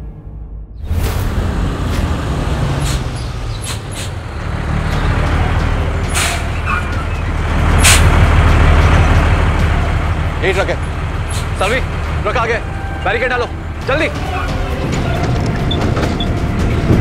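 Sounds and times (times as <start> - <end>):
heavy truck engine rumbling: 0.8 - 17.0.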